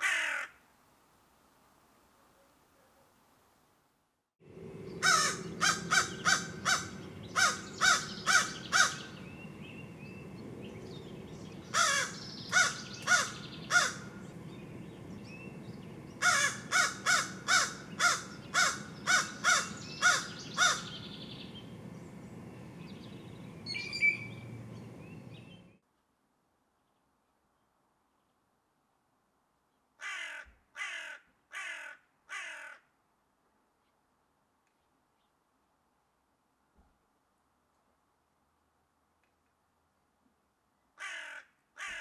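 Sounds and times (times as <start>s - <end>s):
crow cawing: 0.0s - 0.6s, 5.0s - 9.2s, 11.7s - 14.2s, 16.2s - 21.0s, 30.0s - 32.9s, 41.0s - 42.0s
steady background hiss: 0.0s - 29.8s.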